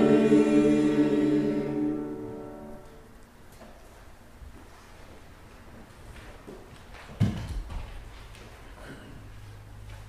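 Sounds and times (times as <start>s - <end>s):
knocks and rustles of seating: 6.2s - 8.6s.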